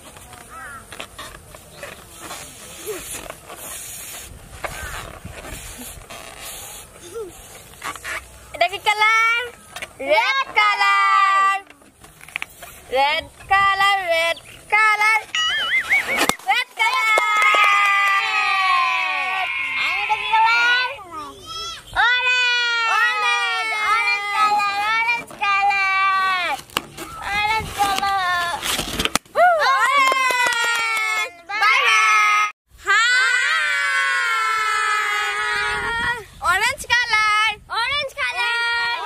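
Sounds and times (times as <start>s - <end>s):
children cheering: 16.9s - 24.5s
children shrieking and shouting: 17.4s - 25.1s, 29.4s - 36.3s.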